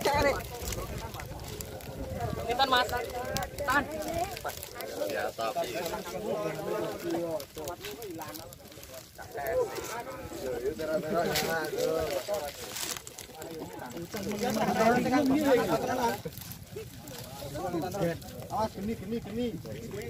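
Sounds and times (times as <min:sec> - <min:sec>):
group of people talking and calling: 0:00.0 - 0:20.0.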